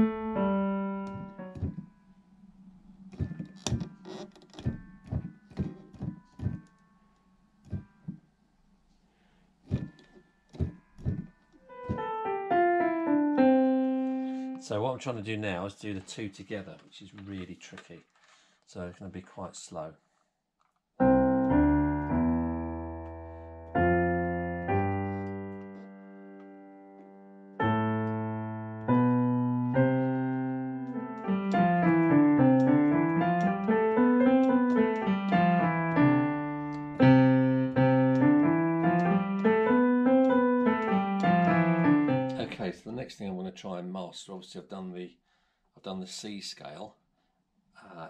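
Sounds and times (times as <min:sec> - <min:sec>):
piano played slowly: 0:00.0 - 0:08.3, 0:09.7 - 0:14.8, 0:21.0 - 0:42.7.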